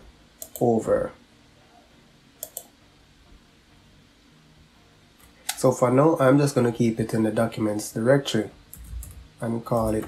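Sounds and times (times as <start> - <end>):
computer mouse clicks: 0.4 - 0.7, 2.4 - 2.7.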